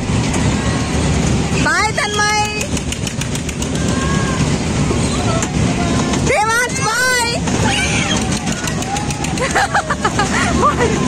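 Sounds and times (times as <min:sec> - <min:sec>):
merry-go-round ride rumbling: 0:00.0 - 0:11.0
scattered voices: 0:00.5 - 0:11.0.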